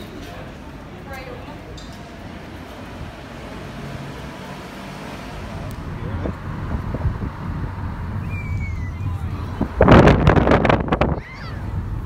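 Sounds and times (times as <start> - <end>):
passing vehicles rumble: 0.0 - 12.0.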